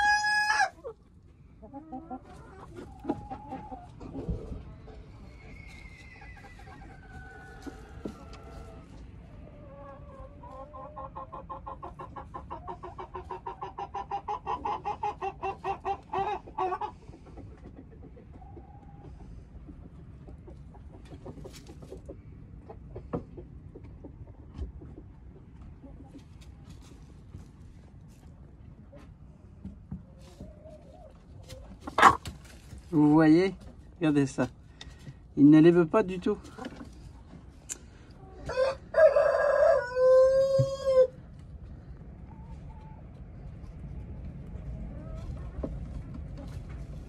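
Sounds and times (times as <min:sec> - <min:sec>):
chicken clucking: 0:00.0 - 0:47.0.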